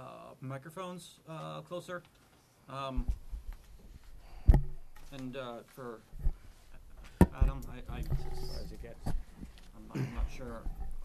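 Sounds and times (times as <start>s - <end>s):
low steady hum: 3.0s - 11.0s
knock on microphone: 7.1s - 8.3s.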